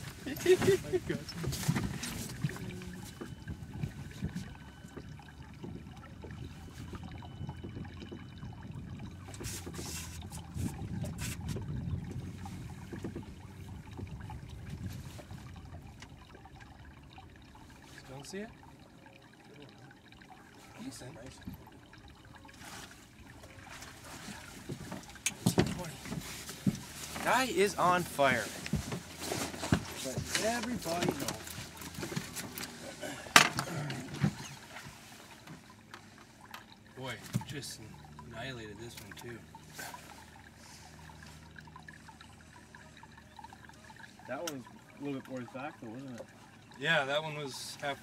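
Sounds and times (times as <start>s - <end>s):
water lapping around boat: 0.0s - 48.0s
wind rumble on microphone: 5.7s - 16.4s
knocks on boat: 12.8s - 14.2s
low talk: 30.0s - 31.5s.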